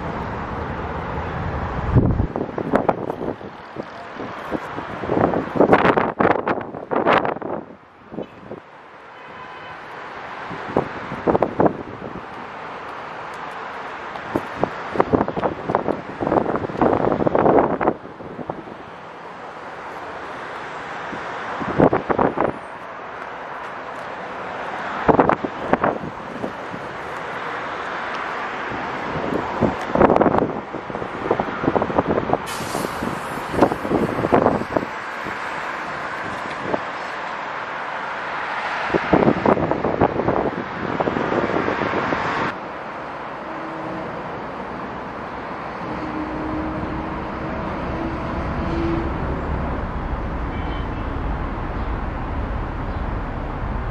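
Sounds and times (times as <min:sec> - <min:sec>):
road traffic rushing: 0:00.0 - 0:53.9.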